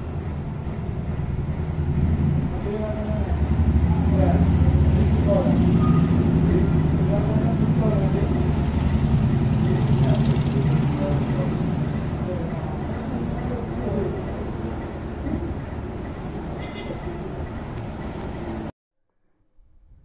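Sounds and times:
vehicle engine rumbling: 0.0s - 18.7s
faint voices: 2.5s - 15.8s.

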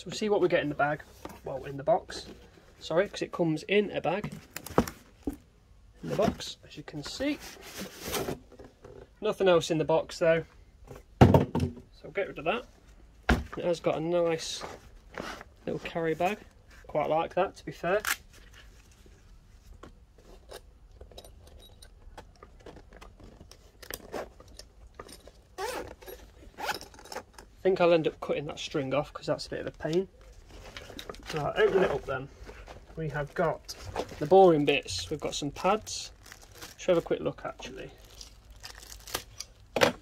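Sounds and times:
plastic packet crinkling: 35.7s - 37.1s, 37.8s - 39.6s.

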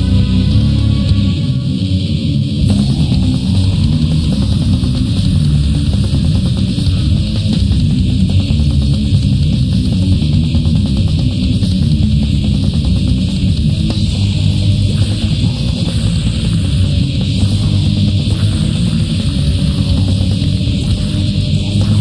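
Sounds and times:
metal guitars: 0.0s - 22.0s
fast drum beat: 2.6s - 22.0s.

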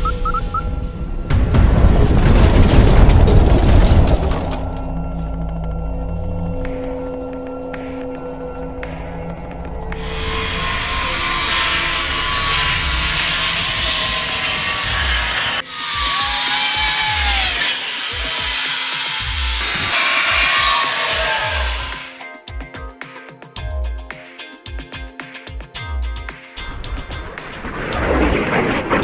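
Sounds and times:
zip wire whoosh: 10.0s - 22.2s
background music with steady beat: 22.0s - 28.6s.

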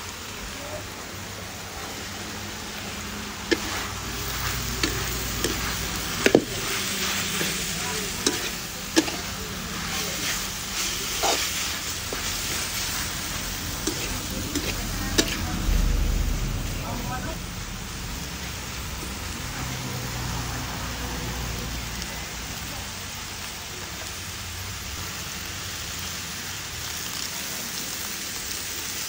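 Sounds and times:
meat and greens sizzling in wok: 0.0s - 29.0s
metal spatula clacking on pan: 8.2s - 9.3s, 13.8s - 15.4s.

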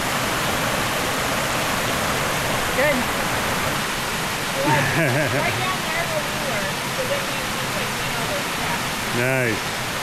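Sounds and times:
stream cascading over rocks: 0.0s - 10.0s.

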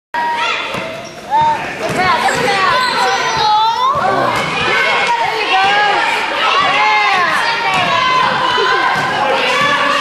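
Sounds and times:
children shouting: 0.2s - 10.0s
basketball bouncing on gym floor: 0.7s - 4.8s, 5.5s - 10.0s.

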